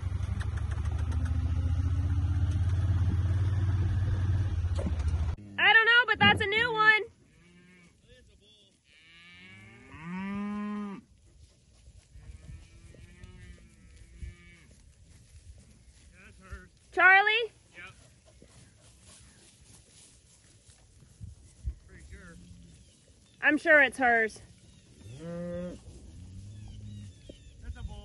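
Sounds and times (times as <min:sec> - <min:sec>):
cattle mooing: 0:08.9 - 0:11.0, 0:25.0 - 0:27.2.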